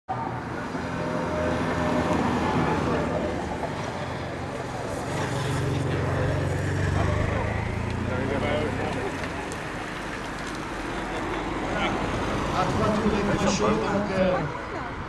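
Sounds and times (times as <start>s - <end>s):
voices: 1.2s - 15.0s
motorcycle engine passing: 1.3s - 11.2s.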